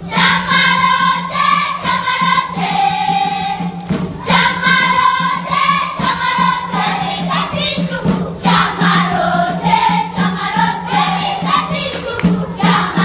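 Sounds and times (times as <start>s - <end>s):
children's choir singing: 0.0s - 13.0s.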